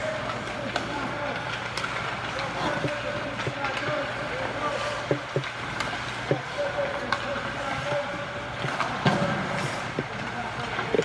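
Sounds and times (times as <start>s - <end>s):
pucks clacking off sticks: 0.0s - 11.0s
skates scraping on ice: 0.0s - 11.0s.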